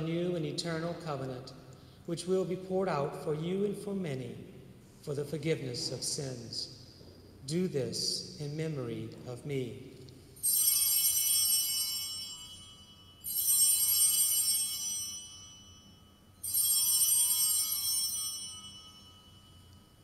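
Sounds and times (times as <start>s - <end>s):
altar bells ringing: 10.2s - 20.0s.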